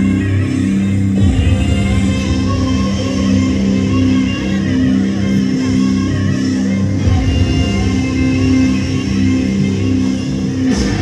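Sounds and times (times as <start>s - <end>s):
loud music: 0.0s - 11.0s.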